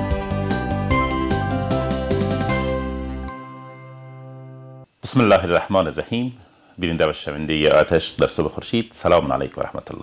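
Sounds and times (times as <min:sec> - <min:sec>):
television theme music: 0:00.0 - 0:04.9.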